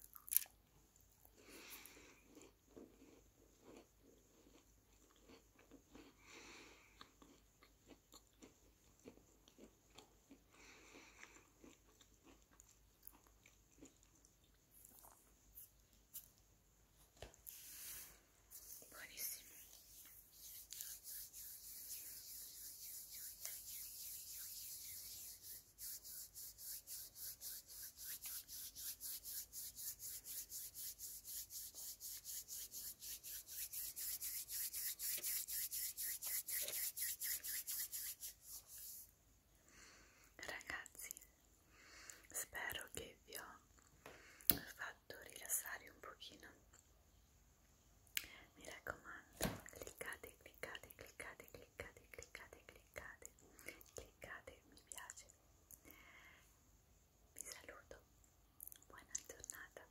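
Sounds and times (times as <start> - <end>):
soft whispering: 17.5 - 39.0, 40.3 - 41.4, 42.2 - 43.7, 44.6 - 46.8, 48.2 - 56.4, 57.3 - 59.9
palms rubbing together: 17.5 - 39.1.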